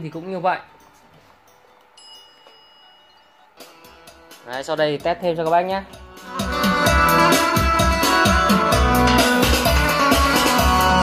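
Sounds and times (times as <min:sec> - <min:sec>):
thin steady high tone: 0:00.8 - 0:03.7
music through small speaker: 0:03.5 - 0:11.0.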